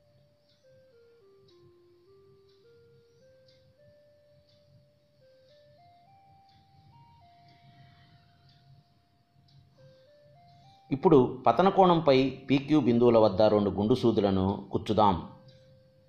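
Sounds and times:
slow quiet background music: 0.0 - 16.0.

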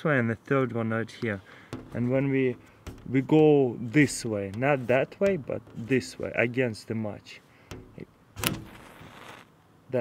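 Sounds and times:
match scraping on glass: 8.4 - 9.5
match head flaring hiss: 8.5 - 9.5.

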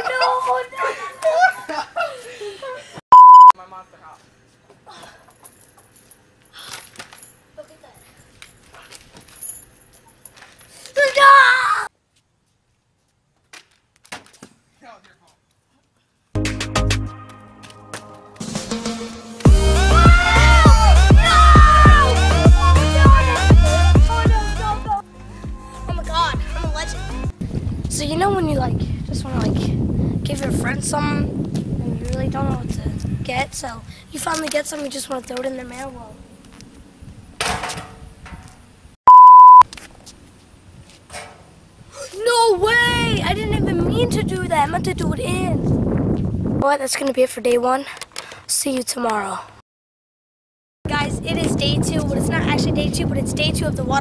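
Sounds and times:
faint outdoor noise: 0.0 - 16.4, 24.6 - 45.3
high-pitched censor bleep: 3.1 - 3.6, 39.1 - 39.6.

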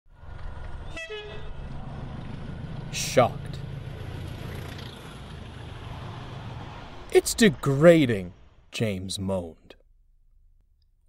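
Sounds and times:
train whistle blast: 0.9 - 1.4.

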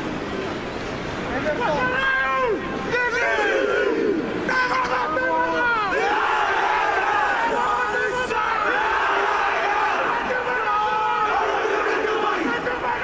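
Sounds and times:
stadium crowd: 0.0 - 13.0
men shouting a chant together: 1.8 - 13.0.

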